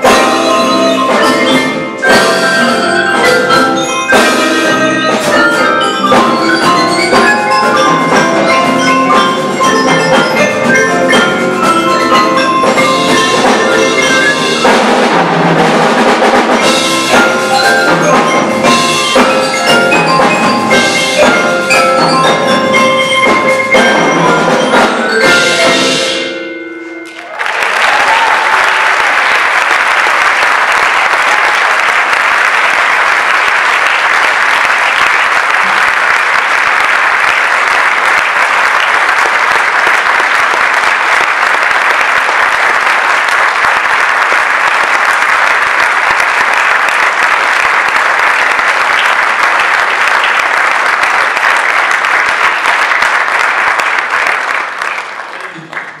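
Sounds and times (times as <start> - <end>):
audience applauding: 0.0 - 26.2, 27.0 - 56.0
percussion ensemble chord: 0.0 - 27.4.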